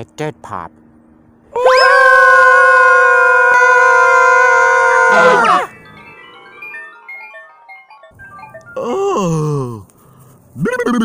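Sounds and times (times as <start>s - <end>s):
high cartoon cry: 1.6s - 5.7s
descending xylophone-like notes: 4.1s - 9.9s.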